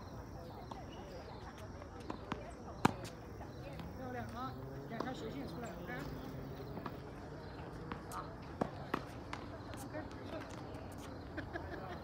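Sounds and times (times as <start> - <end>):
tennis ball hit and bouncing: 1.5 - 3.2, 4.9 - 11.0.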